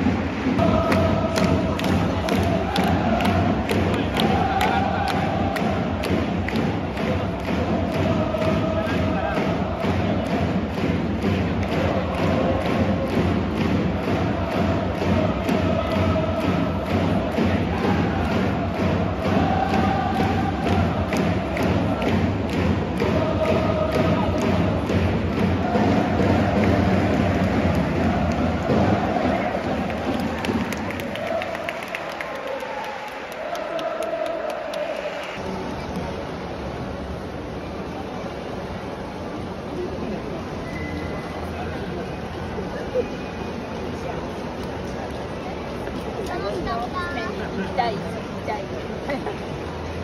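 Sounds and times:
drum beating steadily: 0.0 - 31.7
crowd chanting in unison: 0.0 - 35.5.

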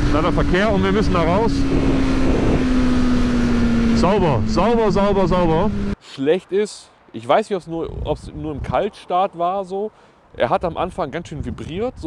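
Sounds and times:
heavy wind rush: 0.0 - 6.0, 7.8 - 9.0, 10.2 - 12.0
motorcycle engine at high revs: 0.0 - 6.0.

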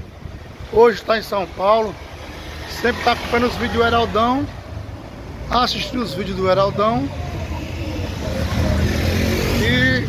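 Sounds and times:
low rumble of engines: 0.0 - 10.0
car driving past: 2.1 - 5.0, 7.1 - 10.0.

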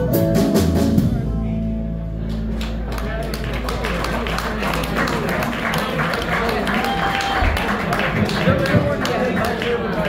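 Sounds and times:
people talking: 1.0 - 10.0
audience clapping: 2.2 - 10.0.

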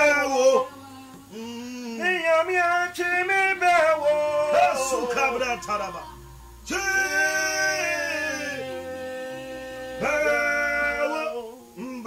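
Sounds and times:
man singing unaccompanied: 0.0 - 12.0.

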